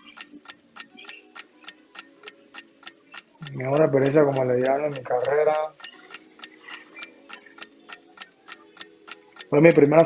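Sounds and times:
faint held musical tone: 0.0 - 10.0
fast clock ticking: 0.0 - 10.0.

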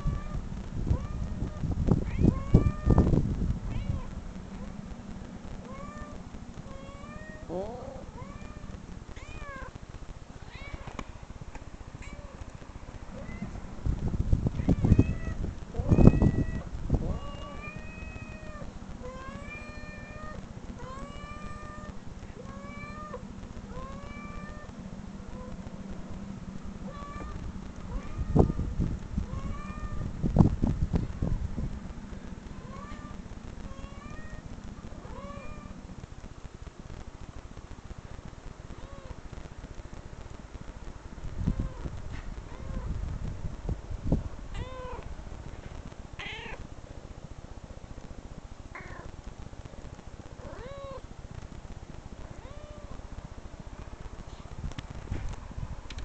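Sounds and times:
recorded cat meows: 0.0 - 3.1, 14.5 - 24.7, 44.5 - 45.1, 46.2 - 46.6.

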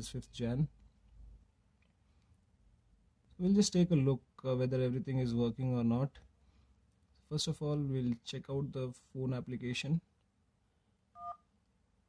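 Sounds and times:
phone dial-pad touch tone: 11.2 - 11.4.

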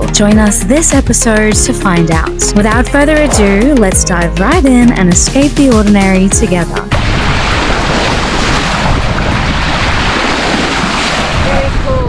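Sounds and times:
bow wave splashing along hull: 6.9 - 12.0
wind buffeting microphone: 6.9 - 12.0.

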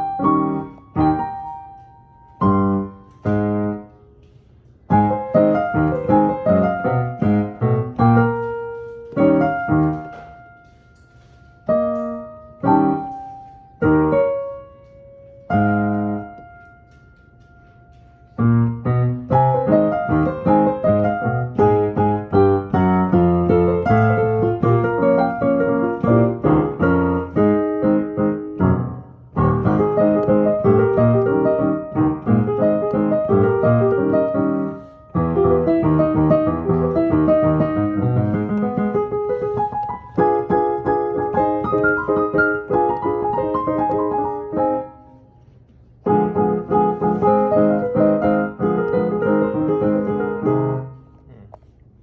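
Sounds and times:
piano song: 0.0 - 52.0.

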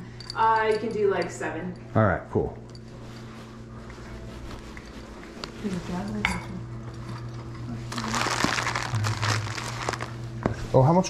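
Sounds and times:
plastic bag crinkling: 7.9 - 10.4.

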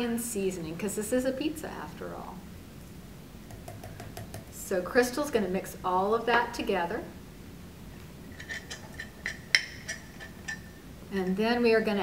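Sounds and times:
utensil clinking in ceramic mug: 8.4 - 10.7.

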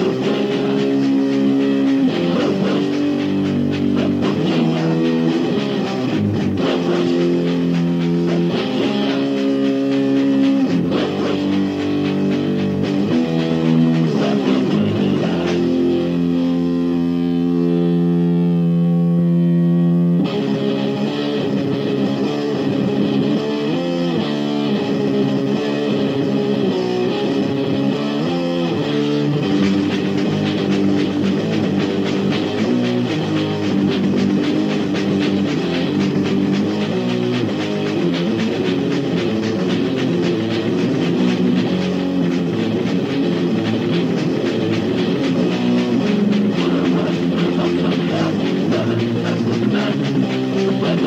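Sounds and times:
fast drumming: 0.0 - 18.1, 20.2 - 51.0
distorted electric guitar riff: 0.0 - 51.0.

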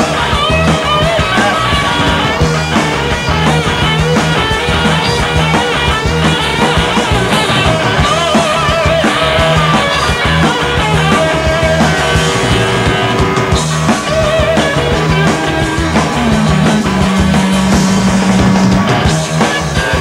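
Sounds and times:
electric guitar lines: 0.0 - 20.0
live rock band playing: 0.0 - 20.0.

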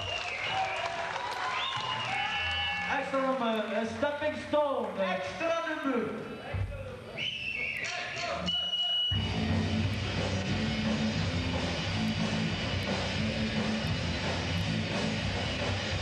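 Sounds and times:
rock band playing: 9.2 - 16.0.

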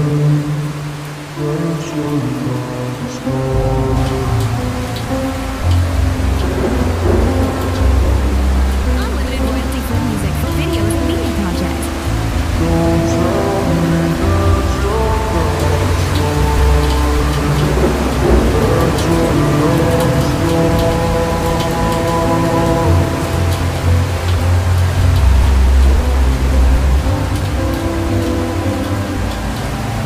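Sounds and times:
rain with pattering drops: 0.0 - 30.0
slowed-down pop ballad: 0.0 - 30.0.

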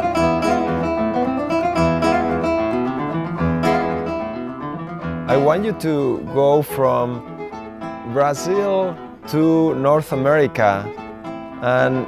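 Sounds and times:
classical guitar melody: 0.0 - 12.0.

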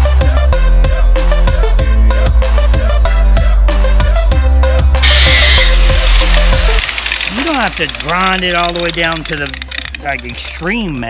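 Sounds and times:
electronic dance music: 5.0 - 10.4.

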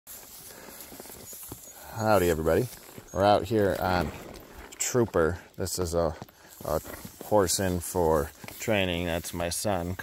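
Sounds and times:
grass rustling: 0.1 - 10.0
hoof thuds in grass: 0.1 - 10.0.

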